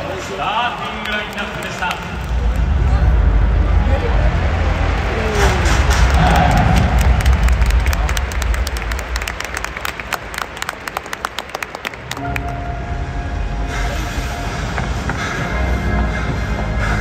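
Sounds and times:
low rumble: 2.0s - 10.6s
music with steady tones: 12.2s - 17.0s.

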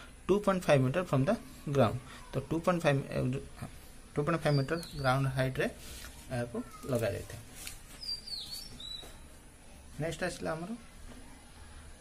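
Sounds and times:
bird chirping: 4.2s - 5.6s, 6.5s - 9.4s.

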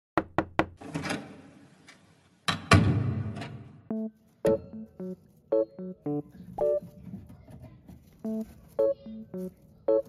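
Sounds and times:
knocks on a door: 0.2s - 0.8s.

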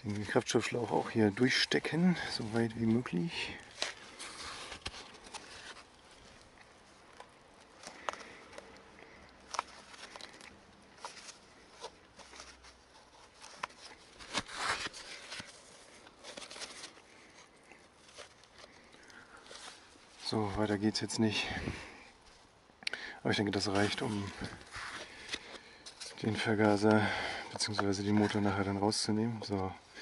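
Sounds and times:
gloved hands rustling and rubbing: 0.0s - 30.0s.

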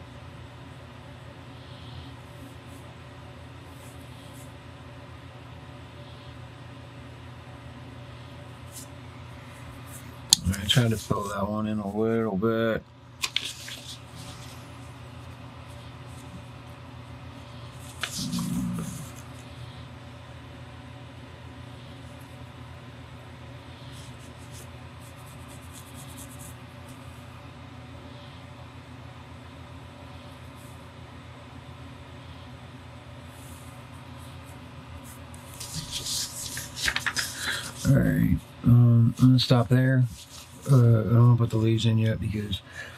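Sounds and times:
steady low hum: 0.0s - 42.9s
paper rustling: 13.2s - 16.5s, 17.7s - 19.5s, 35.0s - 38.0s, 40.0s - 40.8s.

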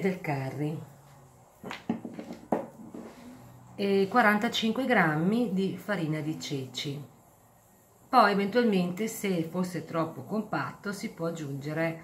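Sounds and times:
kitchen items knocking: 1.7s - 2.8s.

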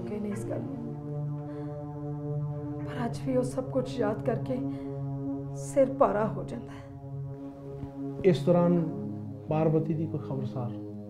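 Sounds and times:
dialogue: 0.0s - 11.0s
low sustained drone: 0.0s - 11.0s.

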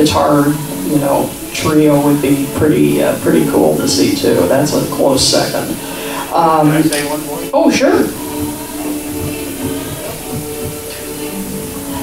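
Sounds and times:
distant live band music: 0.0s - 12.0s
low irregular drum beat: 6.4s - 12.0s.

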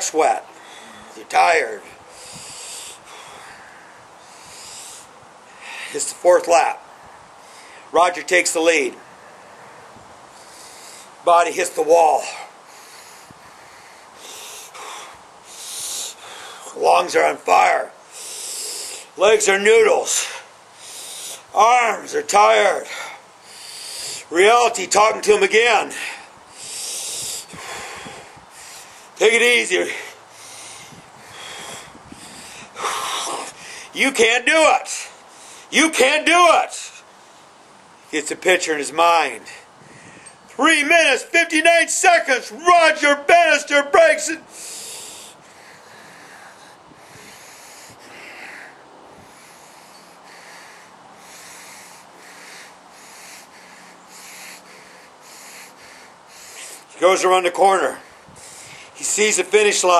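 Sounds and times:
faint breathing: 0.5s - 6.2s, 7.0s - 8.0s, 9.0s - 11.2s, 12.2s - 16.8s, 18.0s - 19.2s, 20.1s - 21.6s, 22.8s - 24.4s, 25.9s - 29.2s, 29.8s - 34.0s, 35.0s - 35.7s, 39.4s - 40.5s, 44.4s - 57.1s, 57.9s - 59.0s
man exhaling heavily: 0.6s - 1.2s, 2.1s - 6.0s, 12.2s - 16.8s, 22.9s - 24.3s, 25.9s - 29.1s, 29.8s - 34.0s, 44.5s - 56.9s
man panting: 0.6s - 6.2s, 12.2s - 16.8s, 18.0s - 19.2s, 20.0s - 21.6s, 22.5s - 34.0s, 44.3s - 59.9s.

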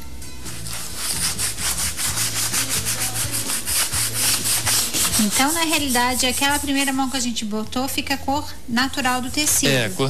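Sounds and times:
applicator scrubbing cloth: 0.5s - 7.1s.

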